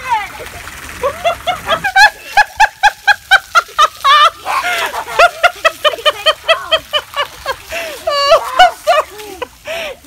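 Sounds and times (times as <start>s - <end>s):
person laughing hard: 1.0s - 9.9s.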